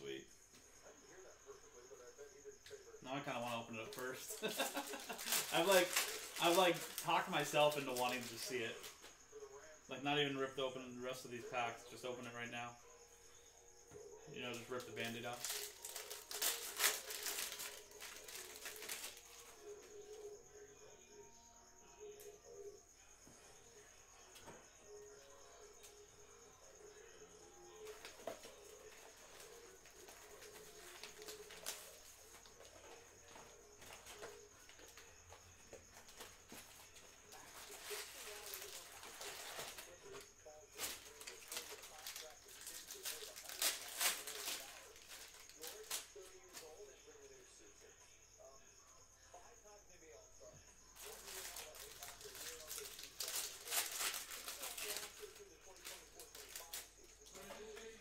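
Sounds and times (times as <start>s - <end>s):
foil wrappers crinkling: 3.3s - 9.0s, 14.5s - 19.6s, 27.8s - 35.0s, 35.9s - 46.8s, 51.0s - 57.7s.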